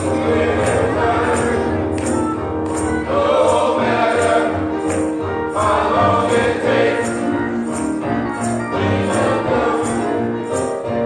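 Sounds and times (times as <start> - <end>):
men's choir singing: 0.0 - 10.6
tambourine beat: 0.0 - 11.0.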